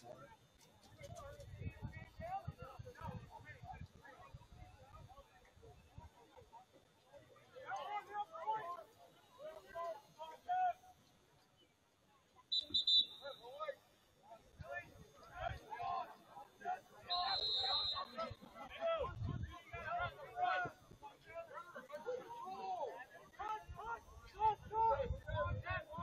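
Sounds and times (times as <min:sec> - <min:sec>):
referee's whistle blasts: 0:12.5 - 0:13.5, 0:17.1 - 0:18.4.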